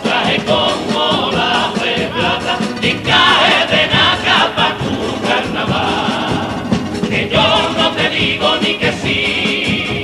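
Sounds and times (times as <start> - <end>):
men's choir singing: 0.0 - 10.0
strummed guitars: 0.0 - 10.0.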